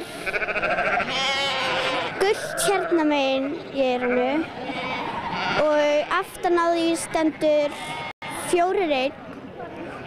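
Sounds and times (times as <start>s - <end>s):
sheep bleating: 0.2s - 6.1s.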